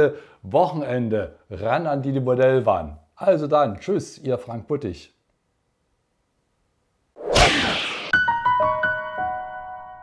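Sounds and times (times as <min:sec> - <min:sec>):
whoosh sound effect: 0:07.2 - 0:08.2.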